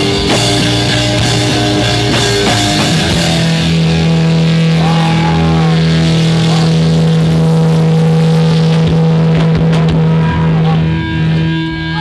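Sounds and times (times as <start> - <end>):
distorted electric guitar note: 0.0 - 12.0
gliding higher guitar tones: 0.0 - 12.0.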